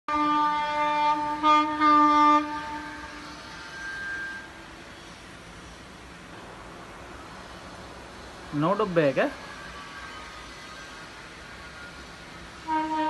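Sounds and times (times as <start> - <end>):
train horn blasts: 0.1 - 4.6, 9.4 - 11.0, 12.6 - 13.0
rumble of passing train: 0.1 - 13.0.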